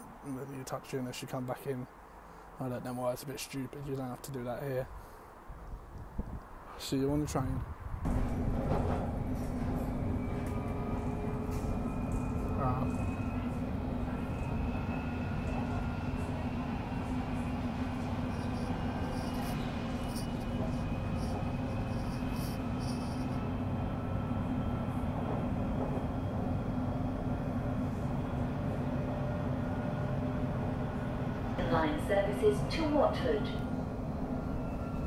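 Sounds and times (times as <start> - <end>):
wheels rumbling on rail: 7.7 - 35.0
constant low hum: 15.5 - 35.0.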